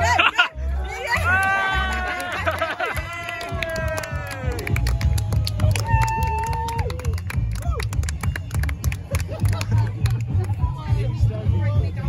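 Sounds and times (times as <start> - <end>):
crowd voices: 0.0 - 12.0
music with steady bass beat: 0.0 - 12.0.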